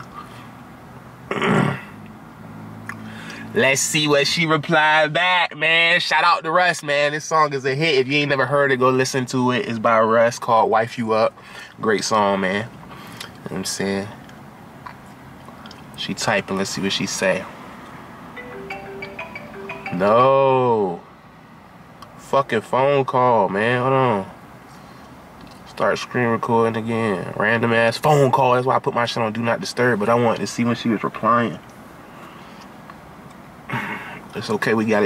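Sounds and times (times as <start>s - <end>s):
marimba-like ringtone melody: 18.4s - 20.8s
car cabin background noise: 21.9s - 35.0s.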